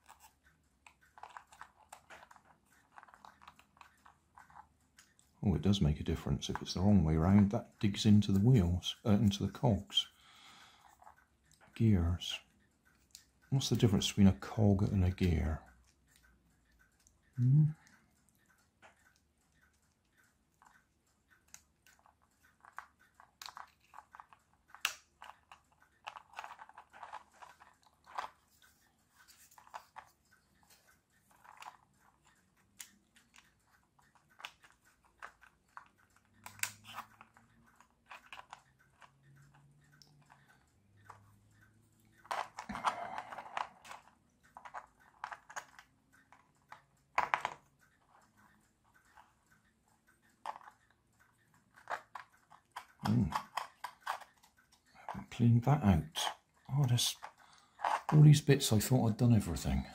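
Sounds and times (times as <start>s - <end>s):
plastic toy parts clicking and rattling: 0.0s - 41.3s, 42.0s - 59.9s
plastic parts clattering: 26.0s - 28.4s.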